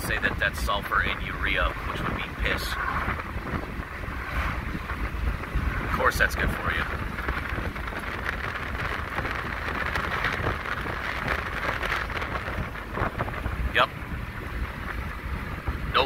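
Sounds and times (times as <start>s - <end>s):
low engine and tyre rumble: 0.0s - 16.0s
road and wind noise in car: 0.0s - 16.0s.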